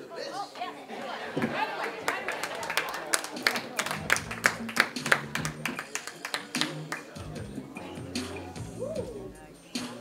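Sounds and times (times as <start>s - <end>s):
people clapping: 1.3s - 7.3s.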